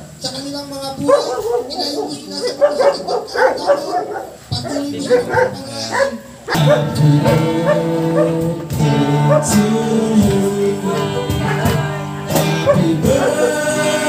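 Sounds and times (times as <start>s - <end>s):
short broken pitched calls: 0.0s - 14.0s
guitar music: 4.8s - 14.0s.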